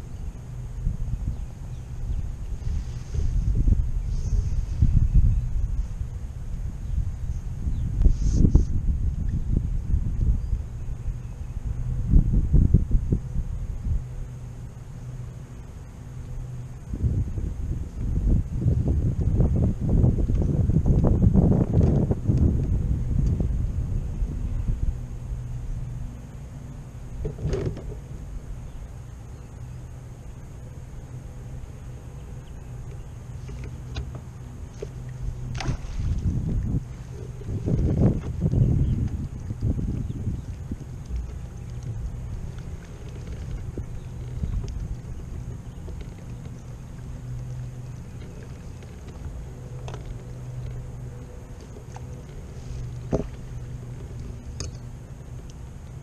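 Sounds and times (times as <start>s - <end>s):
electric trolling motor humming: 0.0s - 56.0s
wind rumbling on microphone: 0.0s - 56.0s.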